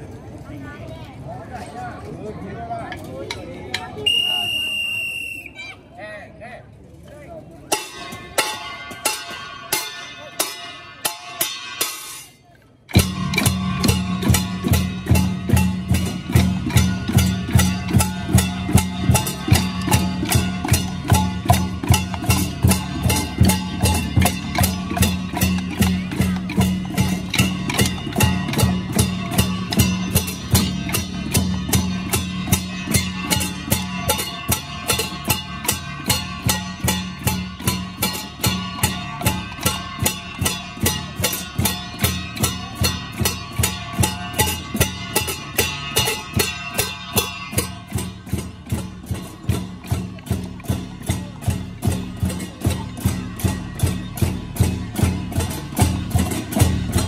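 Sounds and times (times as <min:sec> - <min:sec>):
cymbals: 0:07.7 - 0:57.0
hand-held gong: 0:12.9 - 0:57.0
bass drum: 0:13.0 - 0:57.0.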